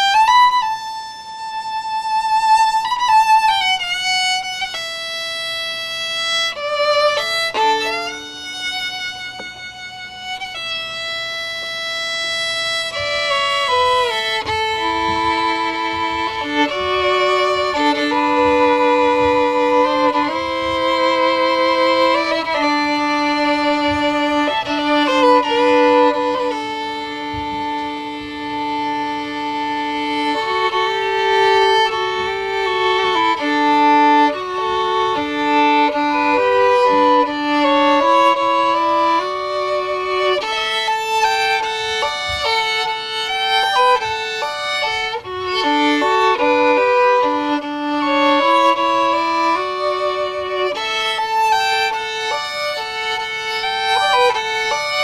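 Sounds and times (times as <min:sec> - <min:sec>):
bowed violin melody: 0:00.0 - 0:55.0.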